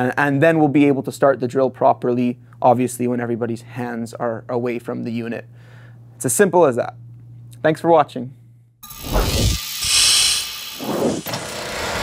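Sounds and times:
machine-like rush: 8.8s - 12.0s.

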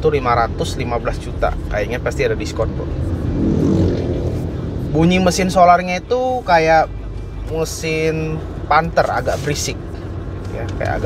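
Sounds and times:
diesel engine rumble: 0.0s - 11.0s
road noise: 0.0s - 11.0s.

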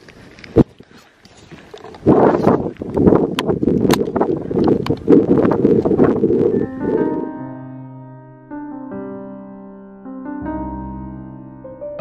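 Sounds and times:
wind buffeting microphone: 0.0s - 7.4s
sharp clicks and rattles: 2.9s - 6.2s
soft piano music: 6.5s - 12.0s.

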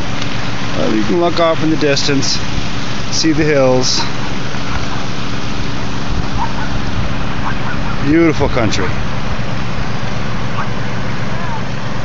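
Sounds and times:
river water running over stones: 0.0s - 12.0s
wind buffeting microphone: 4.1s - 9.6s.

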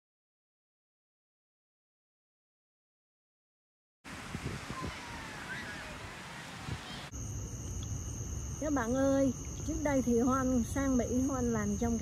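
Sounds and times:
steady rushing noise: 4.1s - 7.1s
crickets trilling: 4.1s - 12.0s
low hum: 4.6s - 12.0s.

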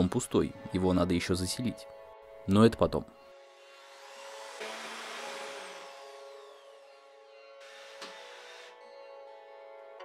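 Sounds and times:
electric drill boring into wall: 3.4s - 9.0s.

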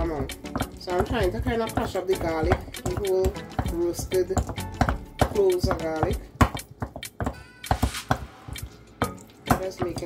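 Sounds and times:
utensil mashing food in glass bowl: 0.0s - 10.0s
sharp knocks against glass: 4.5s - 10.0s.

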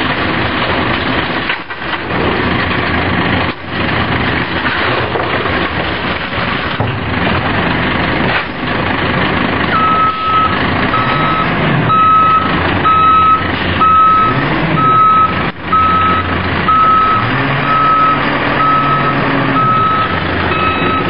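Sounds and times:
truck engine running: 0.0s - 21.0s
truck backup alarm beeping: 9.7s - 21.0s.

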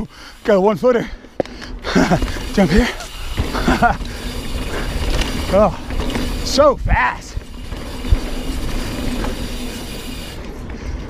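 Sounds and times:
bike rattle: 0.0s - 11.0s
tyres rumbling on dirt: 1.8s - 10.7s.

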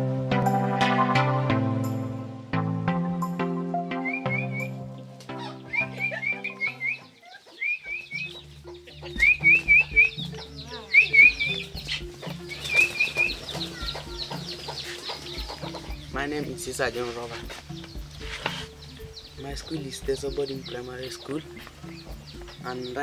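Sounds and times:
soft instrumental music: 0.0s - 23.0s
chickens clucking: 4.0s - 23.0s
small bird chirping: 4.0s - 23.0s
pigeons flapping wings: 12.3s - 15.7s.

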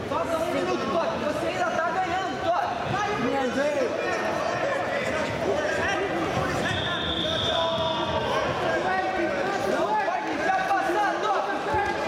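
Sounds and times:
crowd chatter: 0.0s - 12.0s
people shouting and talking: 0.0s - 12.0s.

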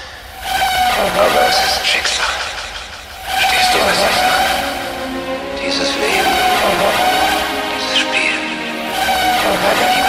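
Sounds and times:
electronic sound effects: 3.2s - 10.0s
held synth tone: 3.2s - 10.0s
sampled voice: 3.3s - 10.0s.

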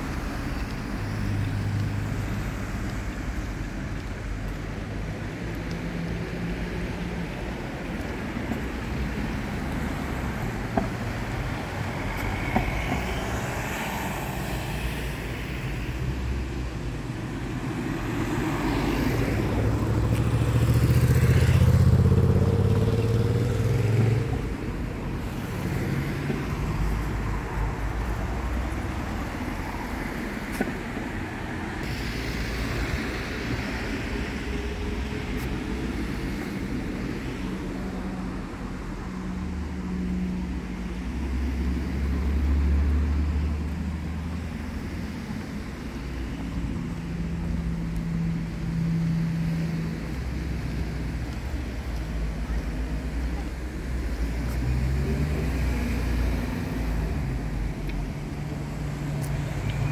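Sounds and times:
cars driving past: 0.0s - 59.9s
town background noise: 0.0s - 59.9s.

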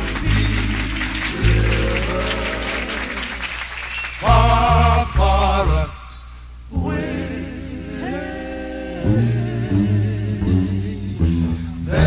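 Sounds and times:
male vocal group singing in harmony: 0.0s - 3.4s, 4.2s - 12.0s.

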